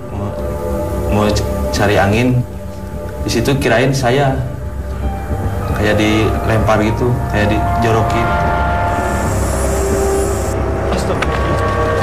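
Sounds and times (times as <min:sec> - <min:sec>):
high hiss: 0:00.0 - 0:06.6, 0:07.2 - 0:10.7.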